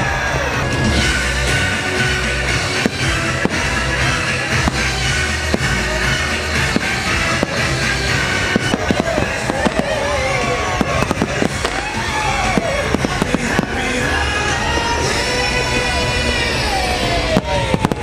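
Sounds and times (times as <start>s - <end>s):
loud show music: 0.0s - 18.0s
fireworks bangs: 0.1s - 18.0s.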